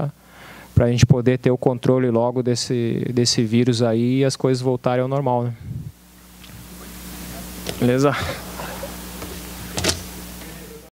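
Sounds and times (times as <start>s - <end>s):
low electrical hum: 0.0s - 10.9s.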